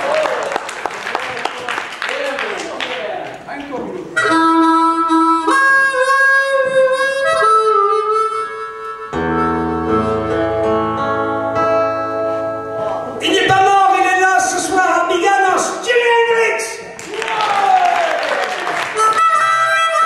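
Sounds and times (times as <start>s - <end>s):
harmonica melody: 4.1s - 15.8s, 18.7s - 20.0s.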